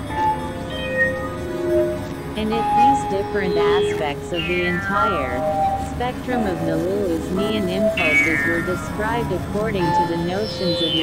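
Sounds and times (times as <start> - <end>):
held synthesizer tones: 0.0 - 11.0.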